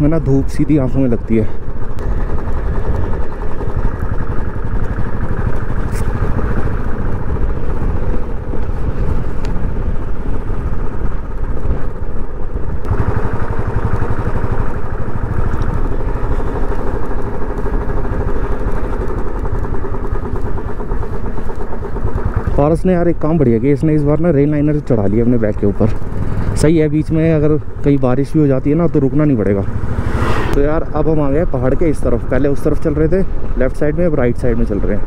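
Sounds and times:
motorcycle engine running: 0:00.0 - 0:35.0.

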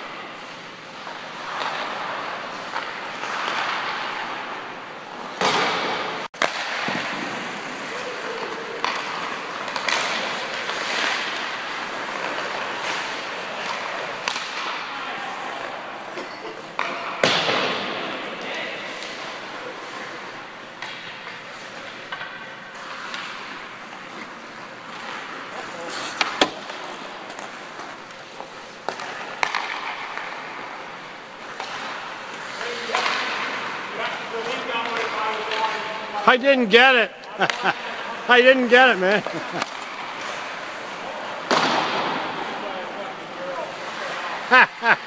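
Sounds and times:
skates scraping on ice: 0:00.0 - 0:45.0
hockey stick hitting puck: 0:01.0 - 0:36.2, 0:37.4 - 0:44.5
players' voices: 0:06.6 - 0:45.0.

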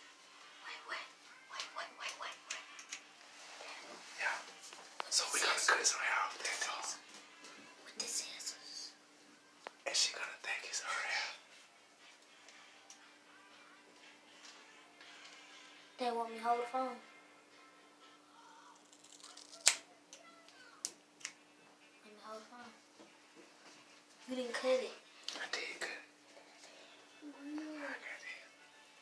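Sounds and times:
hushed whispering voices: 0:00.6 - 0:03.0, 0:03.7 - 0:07.0, 0:07.8 - 0:09.0, 0:09.8 - 0:11.5, 0:25.3 - 0:26.2, 0:27.2 - 0:28.6.

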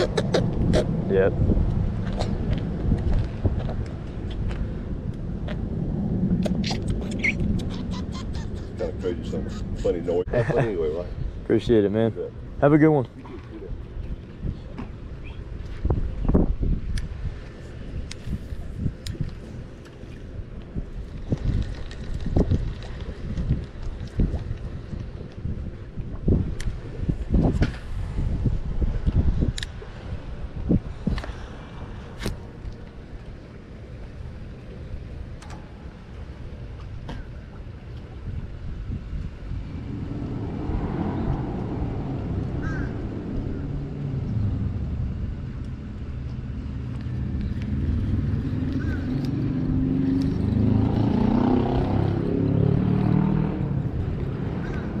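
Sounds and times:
wind gusts on microphone: 0:00.0 - 0:55.0
engine drone: 0:31.4 - 0:55.0.

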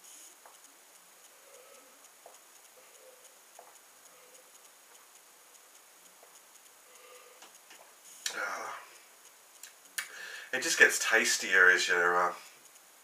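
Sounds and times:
breathy exhale: 0:10.0 - 0:10.6.

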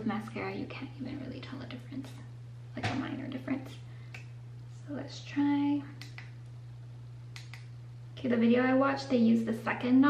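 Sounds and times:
low electrical hum: 0:00.0 - 0:10.0
eyelash curler clicks: 0:07.3 - 0:07.7.

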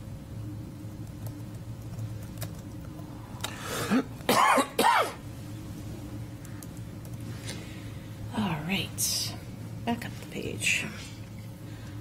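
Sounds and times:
person clearing throat: 0:03.7 - 0:05.2
person coughing: 0:03.7 - 0:05.2.

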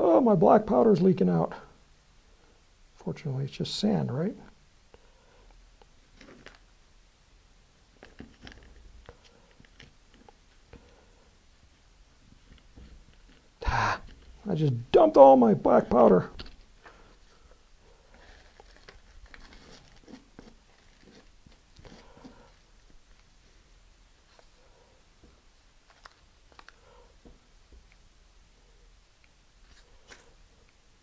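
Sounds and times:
faint soft rustles and ticks: 0:07.9 - 0:14.8, 0:16.3 - 0:28.1
paper rustling: 0:18.0 - 0:22.6, 0:25.8 - 0:26.8.

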